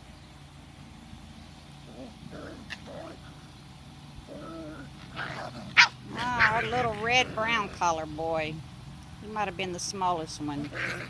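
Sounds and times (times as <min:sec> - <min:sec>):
puppies yipping and whining: 0:04.3 - 0:07.7.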